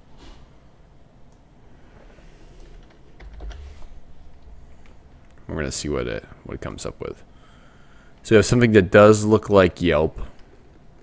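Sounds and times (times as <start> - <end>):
low rumble: 1.4 - 7.6
keyboard keystrokes: 2.8 - 3.9.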